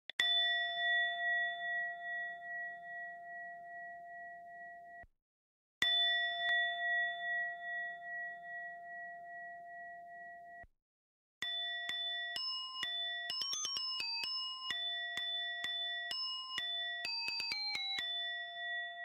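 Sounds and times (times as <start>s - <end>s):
bell-like chime: 0.2s - 4.9s, 11.4s - 19.0s.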